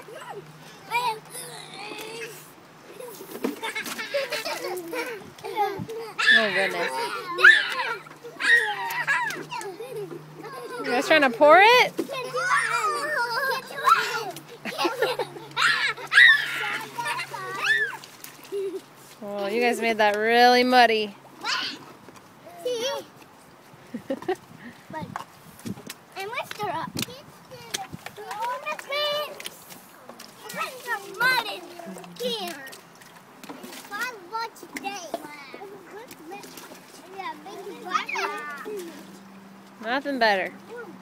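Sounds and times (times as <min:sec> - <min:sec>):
children chattering and calling out: 0:00.0 - 0:41.0
faint outdoor background: 0:00.0 - 0:41.0.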